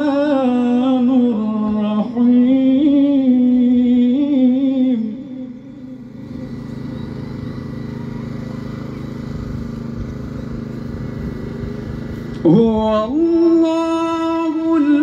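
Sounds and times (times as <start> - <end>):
person chanting loudly: 12.4 - 15.0.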